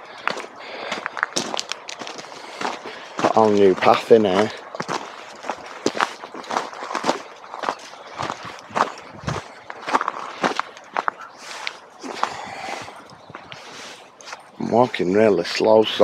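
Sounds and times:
footsteps on gravel: 0:00.0 - 0:15.0.

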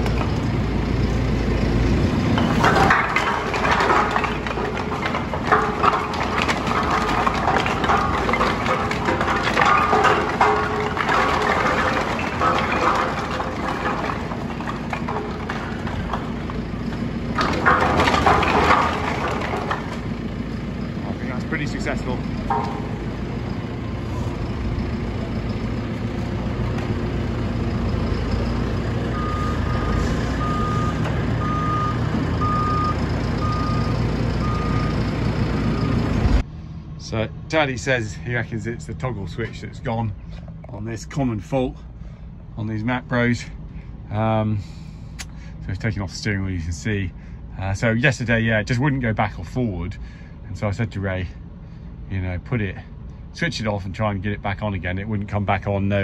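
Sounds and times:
diesel engine running: 0:00.0 - 0:56.0
logs clattering into bags: 0:02.3 - 0:27.2
reversing alarm beeping: 0:29.1 - 0:36.1.

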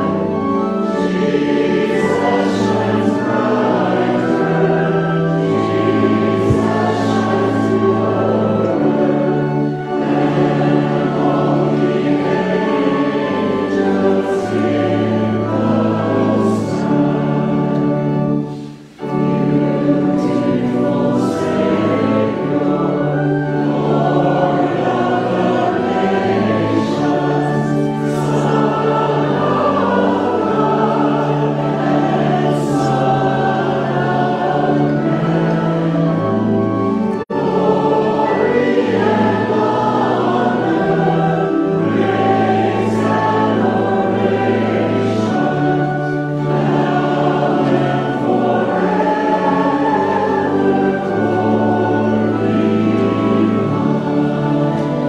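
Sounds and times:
voices singing a hymn in harmony: 0:00.0 - 0:55.0.

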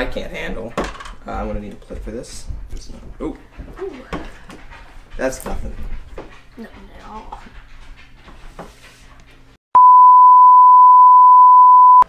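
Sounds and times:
sine-wave beep: 0:09.8 - 0:12.0.

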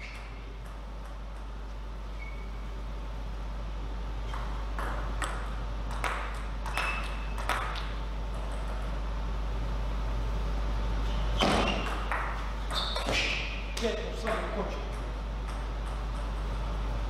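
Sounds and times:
table tennis ball bouncing: 0:00.0 - 0:01.6, 0:04.2 - 0:09.0, 0:11.4 - 0:16.5
low hall hum: 0:00.0 - 0:17.0.

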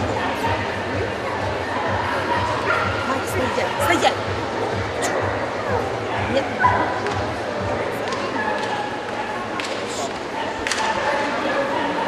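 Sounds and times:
background music: 0:00.0 - 0:10.1
crowd chatter: 0:00.0 - 0:12.0.

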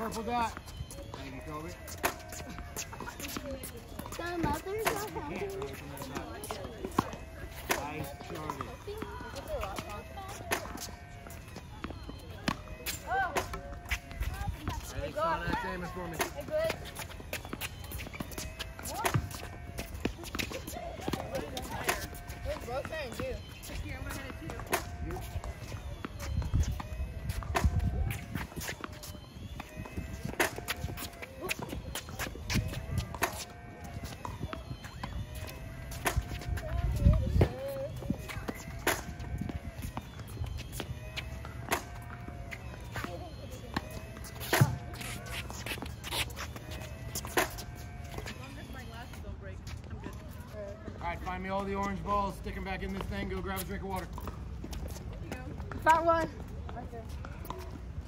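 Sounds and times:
rackets striking tennis balls: 0:00.0 - 0:50.0
balls bouncing on hard court: 0:00.0 - 0:50.2.

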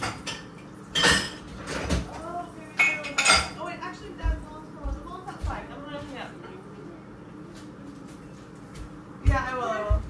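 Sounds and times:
dishes and cutlery clattering: 0:00.0 - 0:03.7.

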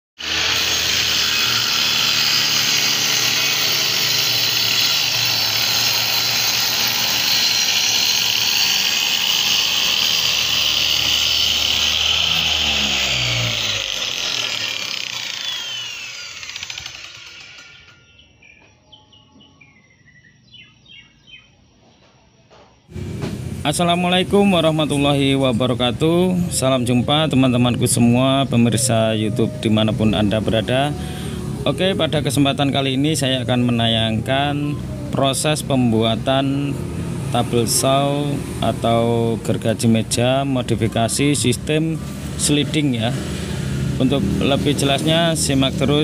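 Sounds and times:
circular saw cutting plywood: 0:00.2 - 0:18.0
saw motor spinning down: 0:00.2 - 0:18.0.

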